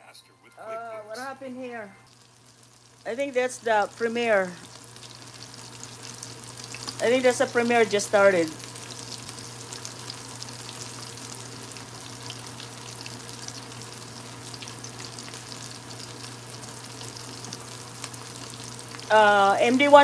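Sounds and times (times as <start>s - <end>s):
calamari sizzling in hot oil: 2.1s - 20.0s.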